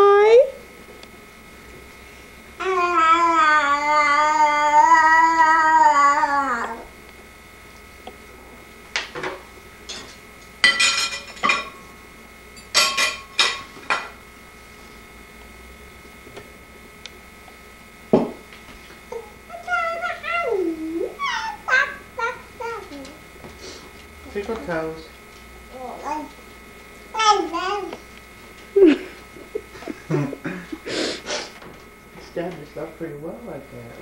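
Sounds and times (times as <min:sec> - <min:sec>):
toddler singing out: 0:19.5 - 0:23.2, 0:27.2 - 0:28.0.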